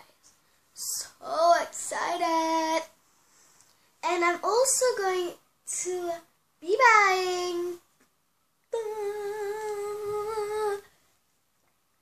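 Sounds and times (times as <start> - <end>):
girl humming a long note: 8.8 - 10.8.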